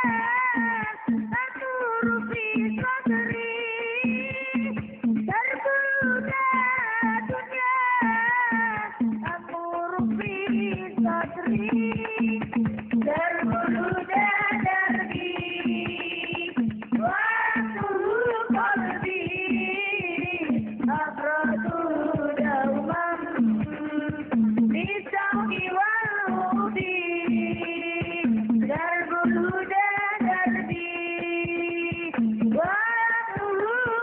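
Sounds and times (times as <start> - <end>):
frame drums: 0.0 - 34.0.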